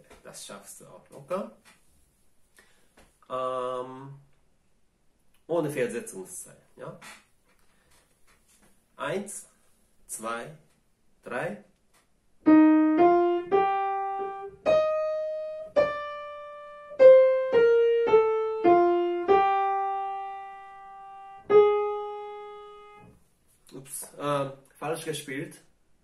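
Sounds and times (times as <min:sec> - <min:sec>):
digital piano melody: 0:12.4 - 0:23.1.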